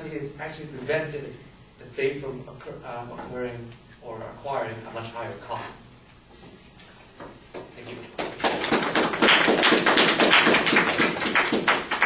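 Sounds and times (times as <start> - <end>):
audience clapping: 8.0 - 12.0.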